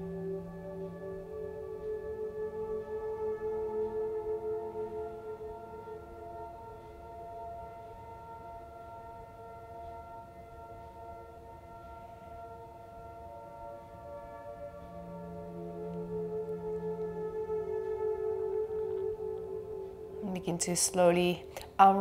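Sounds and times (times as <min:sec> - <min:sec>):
soft ambient music: 0:00.0 - 0:22.0.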